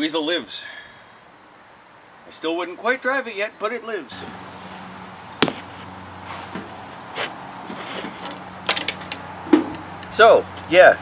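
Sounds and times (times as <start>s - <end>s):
knocks and clunks on tractor seat: 5.4s - 5.7s.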